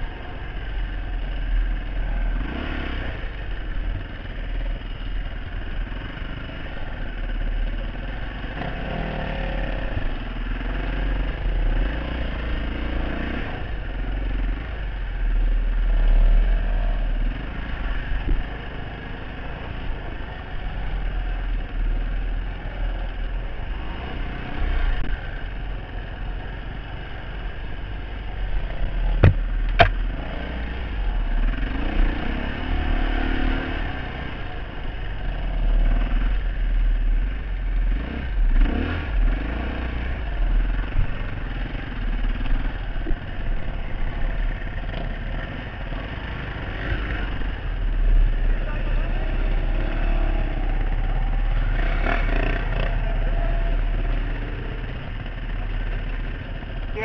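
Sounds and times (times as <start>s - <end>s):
motorcycle engine running: 0.0s - 57.0s
sharp knocks: 29.2s - 30.0s.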